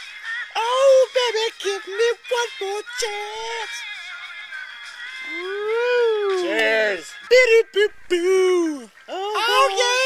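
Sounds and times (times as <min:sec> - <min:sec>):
man singing wordless howl: 0:00.5 - 0:03.8.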